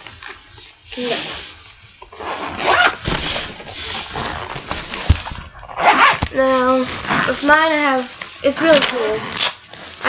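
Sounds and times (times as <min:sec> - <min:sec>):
binder rustling: 0:01.8 - 0:09.2
zipper being pulled shut: 0:02.2 - 0:03.4, 0:05.6 - 0:06.3.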